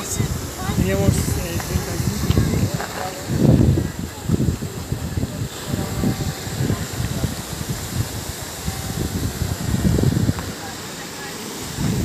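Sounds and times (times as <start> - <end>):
wind buffeting microphone: 0.0 - 10.9, 11.6 - 12.0
outdoor hiss: 0.0 - 12.0.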